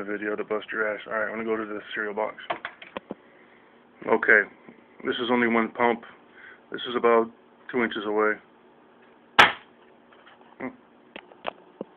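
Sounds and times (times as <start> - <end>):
air pistol crack: 9.4 - 9.7.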